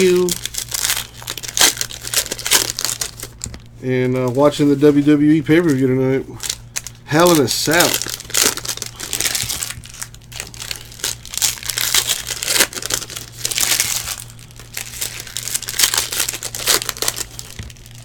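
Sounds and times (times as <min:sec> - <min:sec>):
foil wrappers crinkling and tearing: 0:00.0 - 0:18.0.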